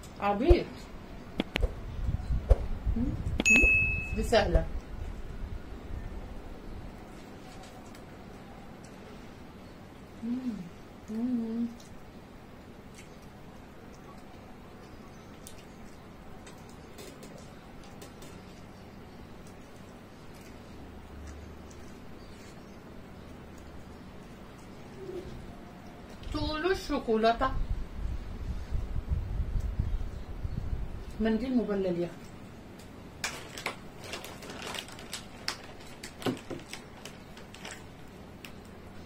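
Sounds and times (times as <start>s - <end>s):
low room hum: 0.0s - 39.0s
faint chewing: 7.0s - 9.4s, 10.0s - 12.1s, 12.7s - 26.4s
soft clicks and smacks of eating: 7.1s - 9.1s, 11.0s - 12.0s, 12.8s - 26.4s, 29.5s - 29.8s, 32.2s - 33.0s.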